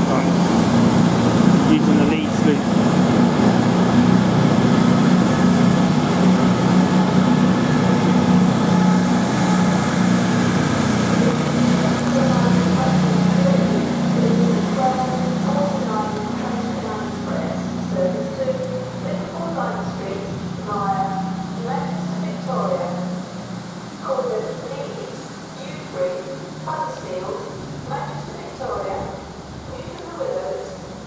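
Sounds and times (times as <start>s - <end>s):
diesel train engines droning: 0.0s - 31.0s.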